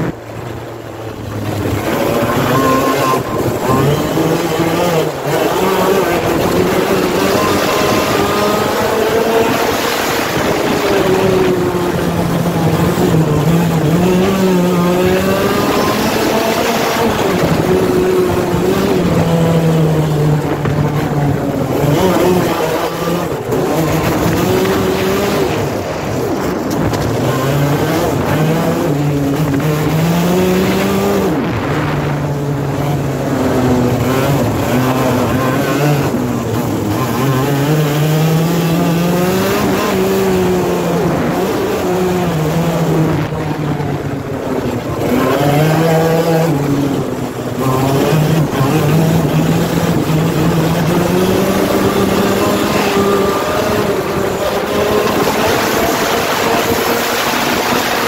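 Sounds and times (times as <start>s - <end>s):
kart engine revving: 0.0s - 58.0s
wind noise: 0.0s - 58.0s.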